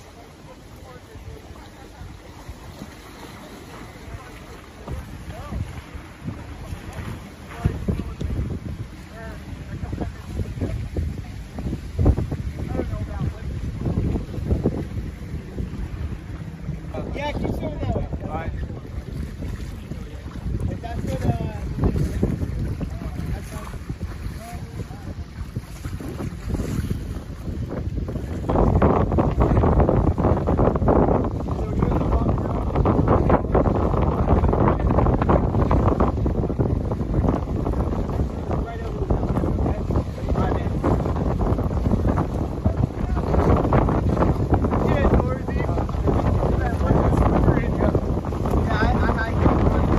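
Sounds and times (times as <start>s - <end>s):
swimmers splashing: 0.0s - 12.0s
choppy water: 0.0s - 49.9s
wind buffeting microphone: 0.0s - 49.9s.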